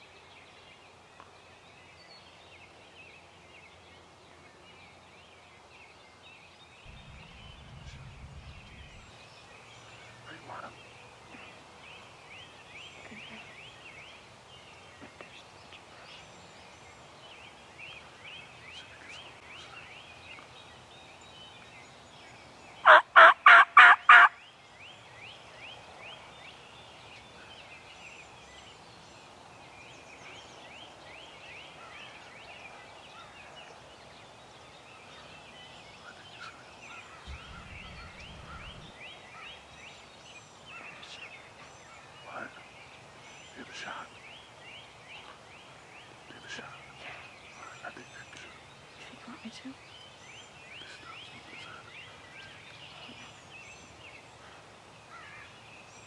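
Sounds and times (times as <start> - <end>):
turkey gobbling: 22.8 - 24.3.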